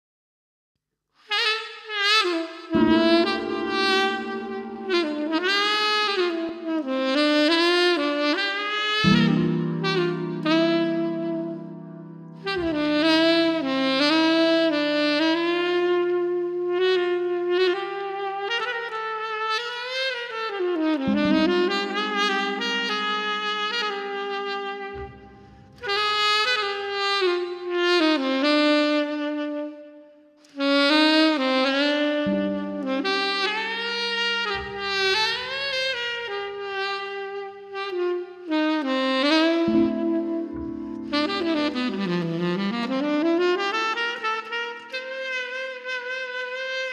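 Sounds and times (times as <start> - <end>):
tenor saxophone solo: 1.2 - 46.9.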